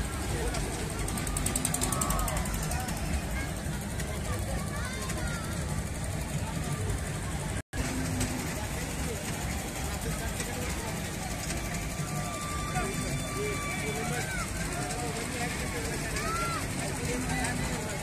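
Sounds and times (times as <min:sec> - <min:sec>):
distant overlapping crowd voices: 0:00.0 - 0:18.0.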